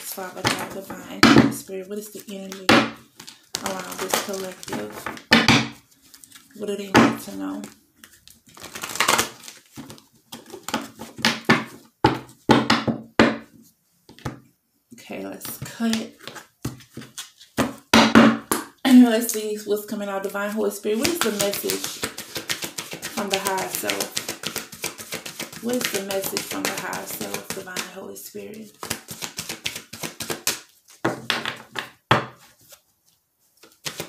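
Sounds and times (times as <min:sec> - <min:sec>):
cards being cut and handled: 0:02.2 - 0:12.4, 0:15.5 - 0:17.9, 0:21.0 - 0:28.0, 0:28.6 - 0:32.8, 0:33.6 - 0:34.0.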